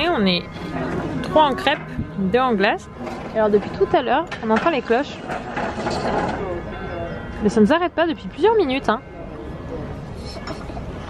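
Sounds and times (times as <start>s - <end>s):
bells ringing: 0.0s - 11.0s
murmur of cafe and street: 0.0s - 11.0s.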